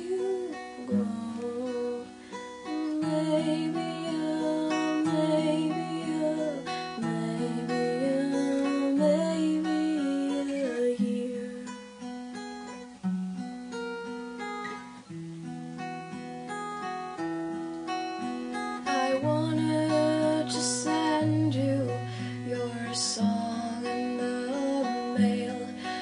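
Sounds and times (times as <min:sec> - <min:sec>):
acoustic guitar playing: 0:00.0 - 0:26.0.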